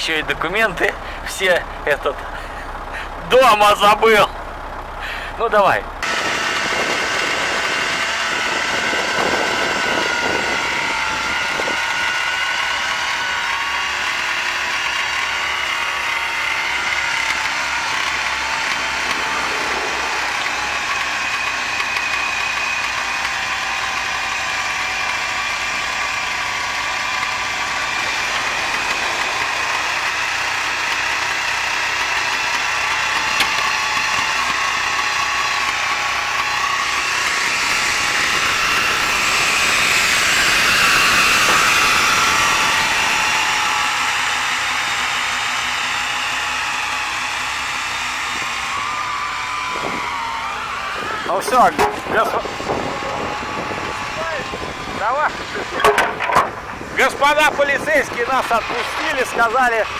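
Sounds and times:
engines running: 0.0 - 59.9.

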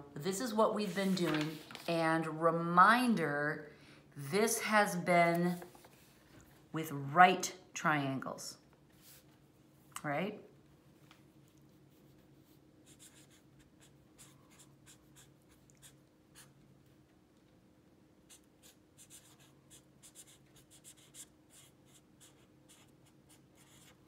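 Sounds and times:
pen scratching on paper: 12.8 - 16.5, 18.3 - 24.0.

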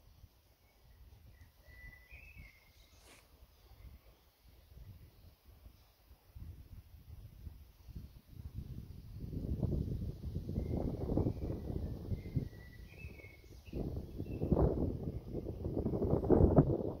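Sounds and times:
faint bird chirps: 0.1 - 6.6, 10.4 - 15.5
wind buffeting microphone: 6.3 - 17.0.

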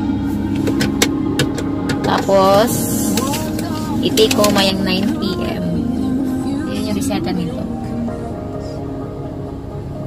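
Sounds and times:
car engine hum in cabin: 0.0 - 10.0.

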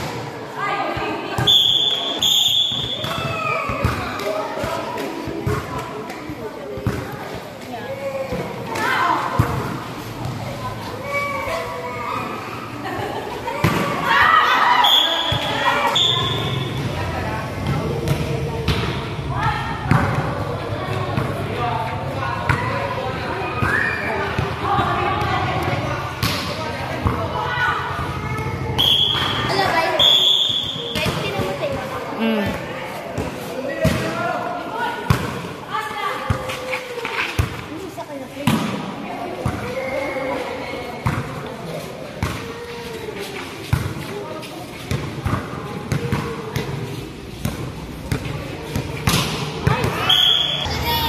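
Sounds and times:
people chattering and calling: 0.0 - 51.0
volleyball bouncing on concrete: 2.7 - 7.2, 19.9 - 21.4, 23.6 - 27.4, 30.8 - 34.2, 38.4 - 39.6, 44.9 - 46.8, 47.4 - 50.4
players shouting: 13.6 - 16.8.

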